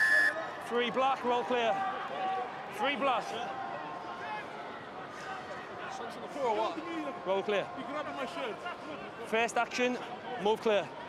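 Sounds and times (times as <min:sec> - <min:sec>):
stadium background noise: 0:00.0 - 0:11.0.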